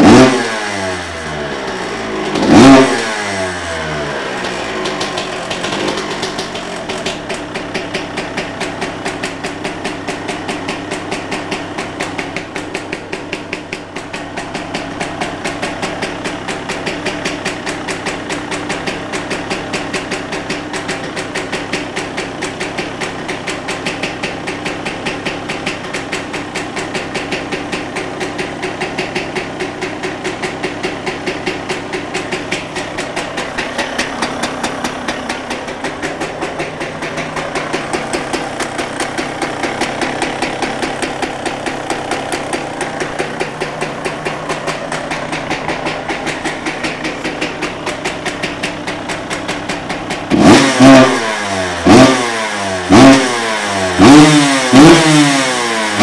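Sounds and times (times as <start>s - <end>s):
engine revved in sharp blips: 0.0s - 5.1s, 50.3s - 56.0s
two-stroke engine idling: 0.0s - 56.0s.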